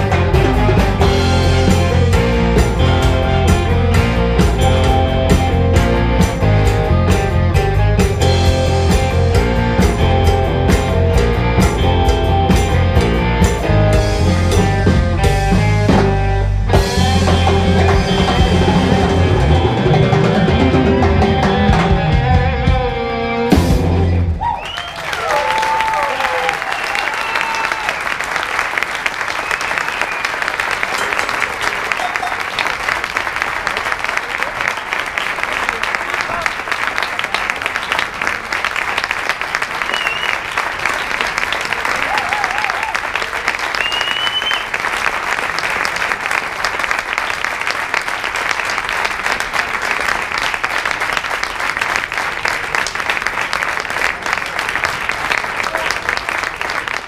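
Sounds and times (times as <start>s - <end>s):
cheering voices: 24.2s - 57.0s
audience applauding: 24.3s - 57.0s
short whistles: 39.9s - 40.4s, 43.8s - 44.7s.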